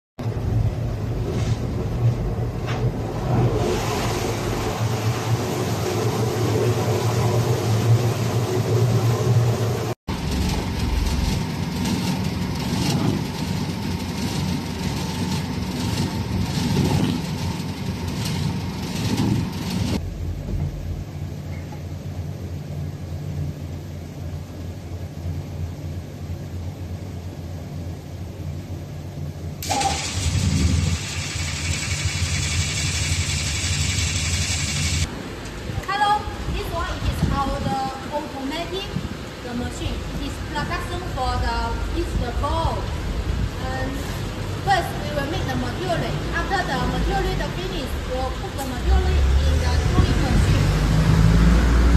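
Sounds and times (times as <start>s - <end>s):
mixer motor hum: 3.2s - 20.1s, 29.6s - 35.1s
loud hiss: 29.6s - 35.1s.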